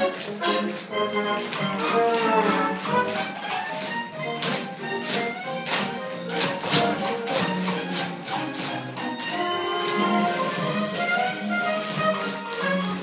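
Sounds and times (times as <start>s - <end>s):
tap shoes on stage floor: 0.0s - 13.0s
upbeat orchestra music: 0.0s - 13.0s.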